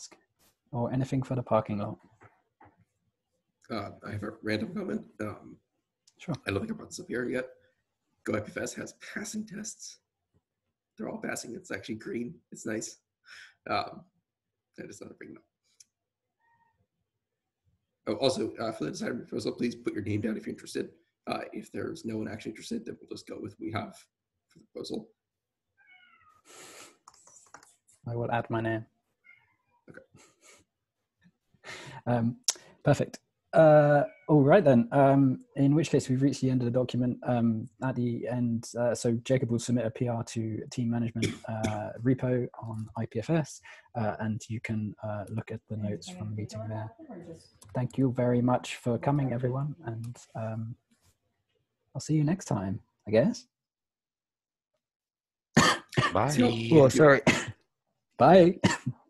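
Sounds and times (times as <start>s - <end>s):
man's voice: 0.8s - 1.9s, 3.7s - 5.4s, 6.2s - 7.4s, 8.3s - 9.9s, 11.0s - 12.9s, 13.7s - 14.0s, 18.1s - 23.9s, 28.1s - 28.8s, 31.8s - 46.9s, 47.8s - 50.7s, 52.0s - 53.4s, 56.0s - 57.5s, 58.2s - 58.8s
faint cat meow: 33.6s - 34.6s.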